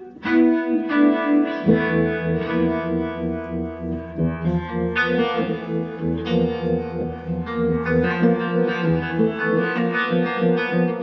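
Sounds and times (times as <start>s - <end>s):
electric guitar with effects: 0.0s - 11.0s.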